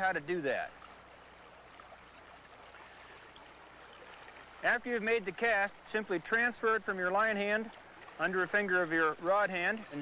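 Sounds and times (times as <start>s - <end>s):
fast-running stream water: 0.0s - 10.0s.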